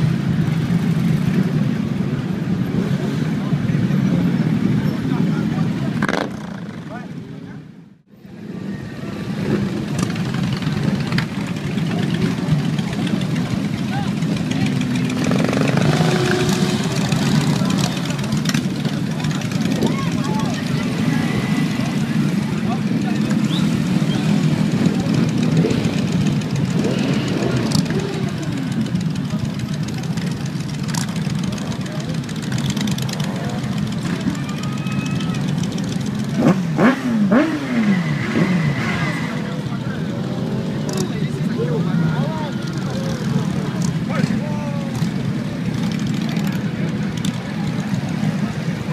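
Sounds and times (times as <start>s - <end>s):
motorcycle engine revving: 0.0s - 7.3s, 8.4s - 48.9s
crowd chatter: 0.0s - 48.9s
motorcycle engines: 0.0s - 48.9s.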